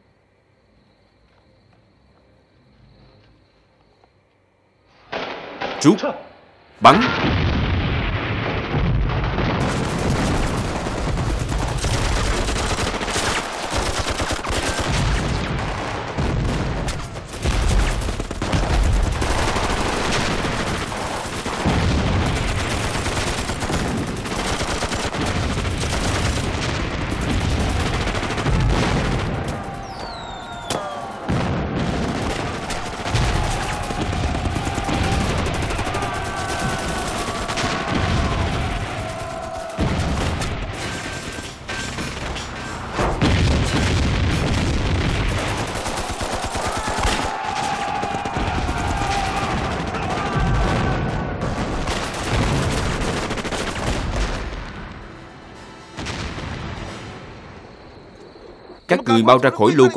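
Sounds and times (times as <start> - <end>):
booming explosions: 6.8 - 57.7
rapid gunfire: 8.4 - 54.5.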